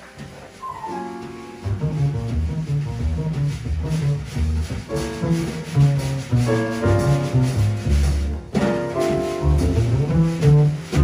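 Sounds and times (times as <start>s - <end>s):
soft scraping accompaniment: 0.0s - 11.0s
plucked double bass: 1.6s - 11.0s.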